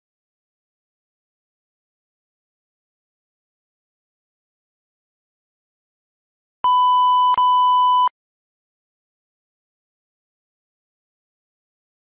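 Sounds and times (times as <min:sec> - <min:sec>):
high electronic beep tone: 0:06.6 - 0:08.1.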